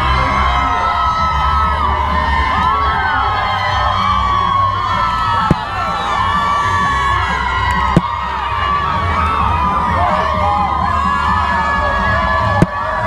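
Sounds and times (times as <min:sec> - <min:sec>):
crowd cheering and whooping: 0:00.0 - 0:13.0.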